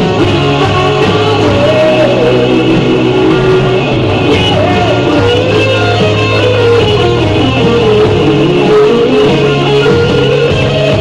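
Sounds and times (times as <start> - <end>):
electric guitar lead: 0.0 - 11.0
rock ballad backing track: 0.0 - 11.0.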